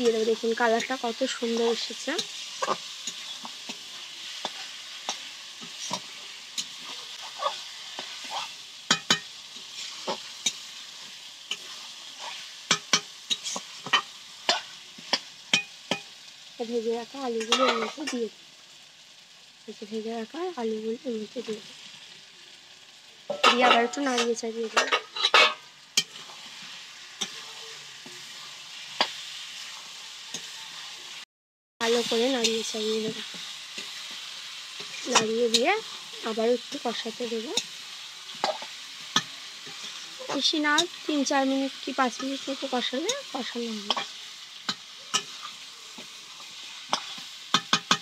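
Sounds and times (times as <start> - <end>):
metal spatula scraping pan: 0.0 - 16.1, 17.4 - 18.1, 23.3 - 31.0
spatula stirring: 0.0 - 16.1, 32.1 - 41.1, 42.1 - 48.0
food sizzling in oil: 0.0 - 48.0
spatula clicking against pan: 44.7 - 45.3, 46.9 - 48.0.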